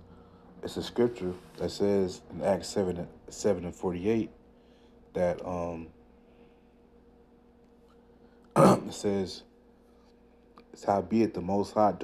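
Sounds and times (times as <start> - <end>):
faint room hum: 0.0 - 12.0
man clearing his throat: 8.6 - 9.0.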